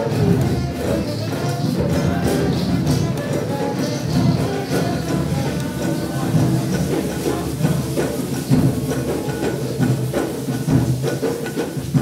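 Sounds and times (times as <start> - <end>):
hand percussion strikes: 0.0 - 12.0.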